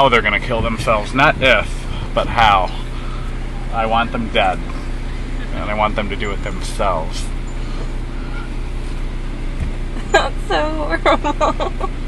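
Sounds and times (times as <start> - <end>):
car engine and road noise: 0.0 - 12.0
brief low thud: 9.5 - 9.9.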